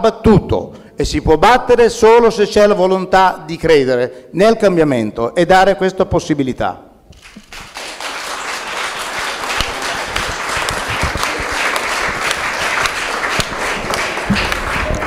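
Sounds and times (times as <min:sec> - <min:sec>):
audience applauding: 0:07.2 - 0:15.0.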